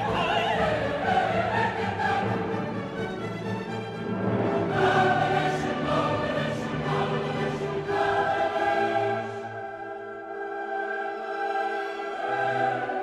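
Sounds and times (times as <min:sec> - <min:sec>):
choir singing held chords: 0:00.0 - 0:13.0.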